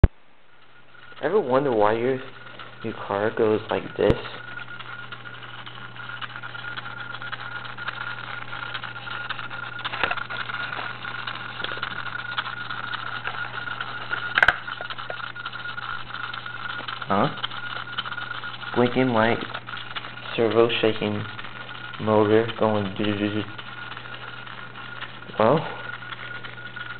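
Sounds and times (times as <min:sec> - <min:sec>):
high electrical whine: 0:00.0 - 0:26.9
low hum: 0:00.0 - 0:26.9.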